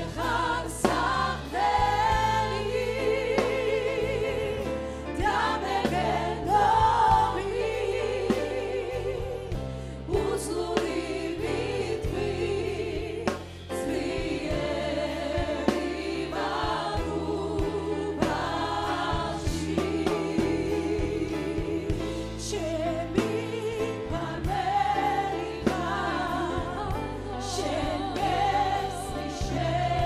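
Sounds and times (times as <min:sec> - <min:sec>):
choir singing gospel song: 0:00.0 - 0:30.0.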